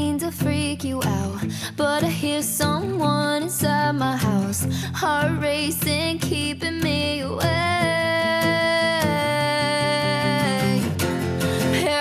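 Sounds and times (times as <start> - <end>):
acoustic guitar strumming: 0.0 - 12.0
woman singing: 0.0 - 12.0.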